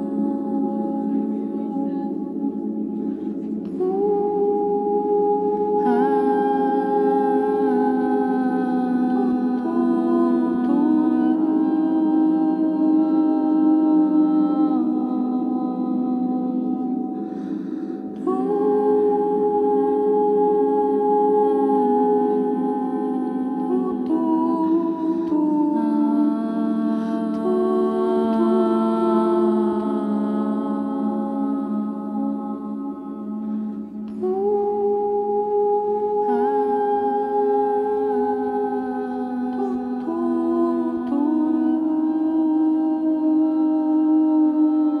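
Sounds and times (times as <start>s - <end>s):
layered wordless vocal chord: 0.0s - 45.0s.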